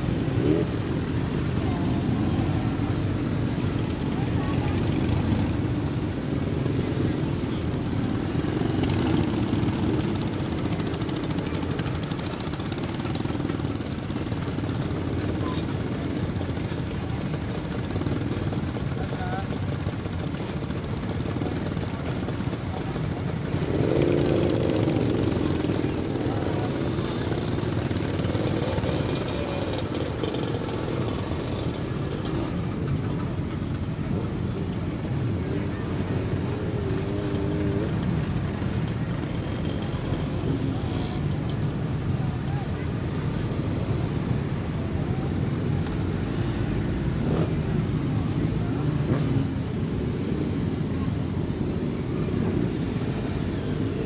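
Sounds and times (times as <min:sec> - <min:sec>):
loud motorcycle engine: 0:00.0 - 0:54.0
motorcycles riding past: 0:00.0 - 0:54.0.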